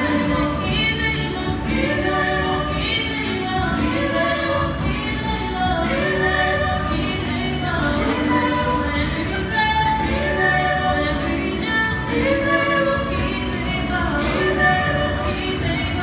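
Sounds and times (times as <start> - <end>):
female vocal trio singing gospel: 0.0 - 16.0.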